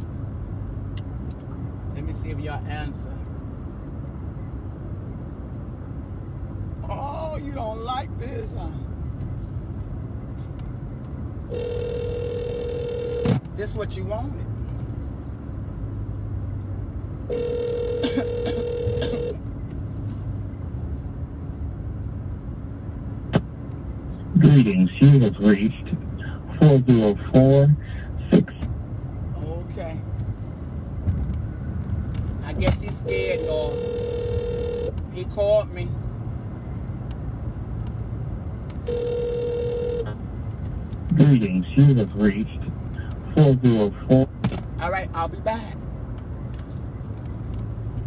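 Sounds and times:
low steady hum: 0.0s - 48.0s
phone ringback tone: 11.5s - 13.3s, 17.3s - 19.4s, 33.1s - 34.9s, 38.9s - 40.1s.

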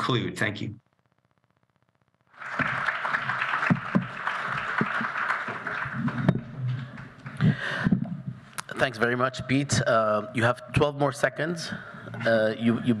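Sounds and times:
audience applauding: 2.3s - 7.9s.

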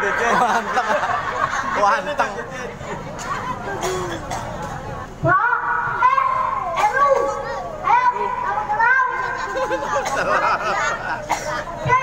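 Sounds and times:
child speaking into a microphone: 3.2s - 4.5s, 5.2s - 12.0s.

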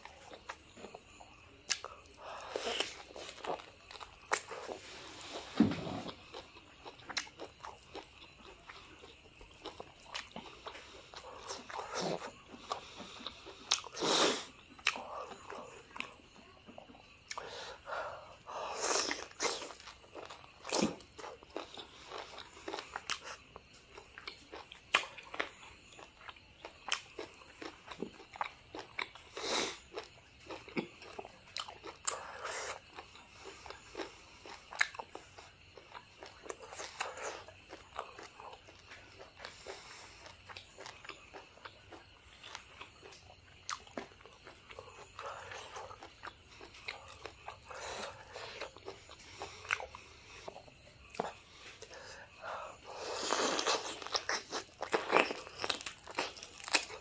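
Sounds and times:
biting and chewing meat: 18.9s - 57.0s.

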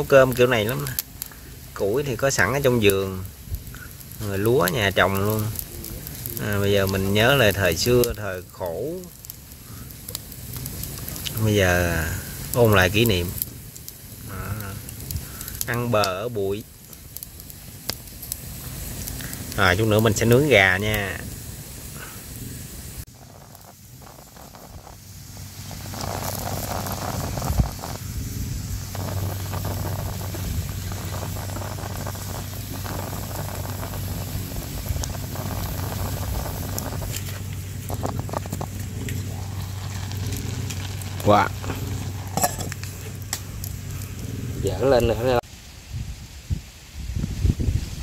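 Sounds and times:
pot hissing and sizzling: 0.0s - 48.0s
wood fire crackling: 0.0s - 48.0s.

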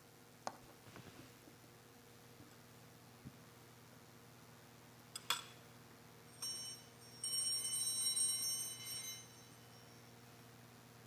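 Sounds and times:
small bells ringing: 6.2s - 10.5s.

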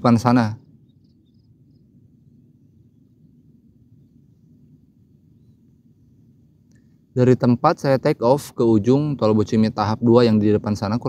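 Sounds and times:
insect chirps: 0.0s - 7.1s
low background hum: 0.0s - 11.0s.

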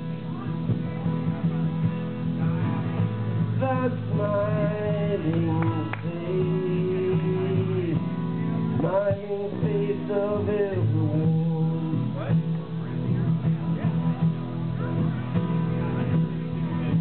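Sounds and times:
acoustic guitars: 0.0s - 17.0s.

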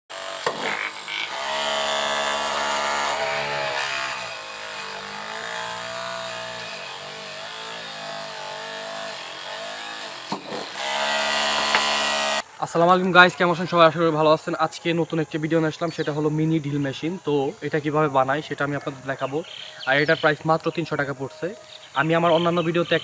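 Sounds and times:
small motor drill whining into wood: 0.1s - 12.5s.

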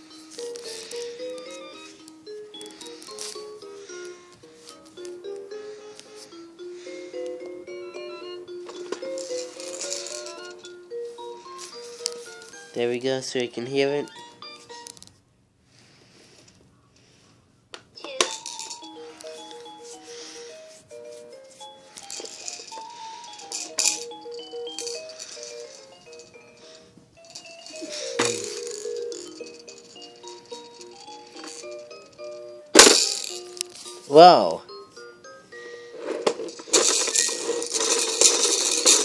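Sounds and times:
toy handling clicks and knocks: 0.0s - 6.3s, 8.6s - 10.8s, 11.5s - 12.8s, 14.0s - 15.2s, 17.7s - 20.4s, 21.4s - 34.6s, 35.9s - 39.0s
toy piano electronic melody: 0.0s - 15.0s, 18.0s - 39.0s.

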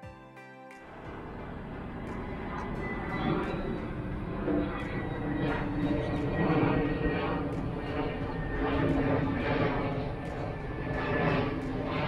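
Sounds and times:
soft background music: 0.0s - 12.0s
steady outdoor rumble: 0.9s - 12.0s.

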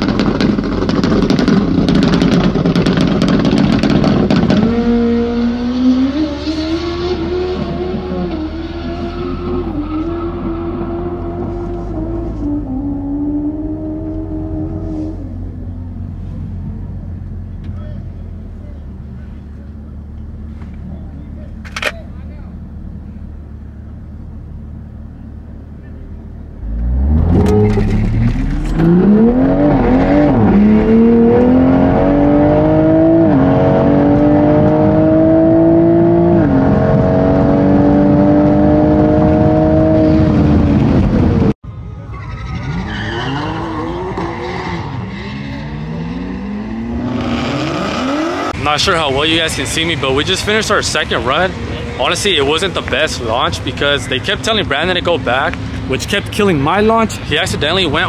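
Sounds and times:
car engine revving through gears: 0.0s - 15.6s, 26.6s - 41.6s, 42.6s - 48.6s
distant car accelerating: 0.0s - 21.6s, 22.7s - 58.0s.

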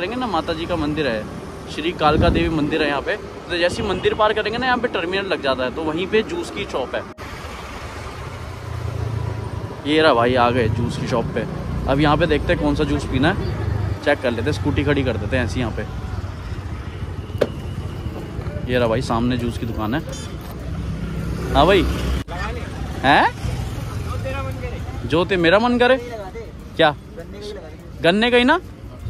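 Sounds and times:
street traffic rumble: 0.0s - 29.0s
scooter engine humming: 13.1s - 19.3s.

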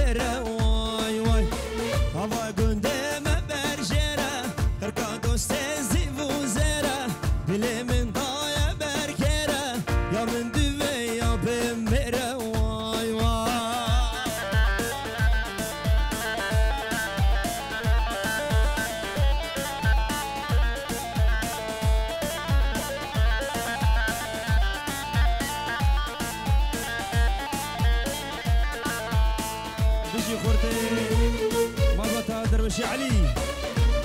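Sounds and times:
fast plucked-string melody: 0.0s - 34.0s
steady drum beat: 0.0s - 34.0s.

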